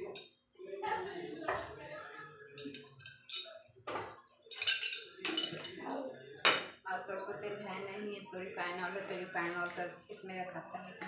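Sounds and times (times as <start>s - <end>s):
spoon and jars clattering: 2.6s - 5.8s.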